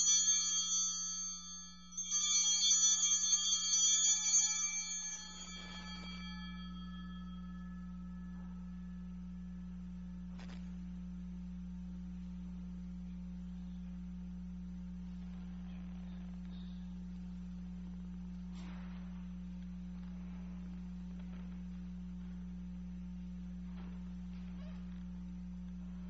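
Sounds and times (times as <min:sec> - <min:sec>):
altar bells ringing: 0:00.0 - 0:10.0
steady low hum: 0:00.0 - 0:26.0.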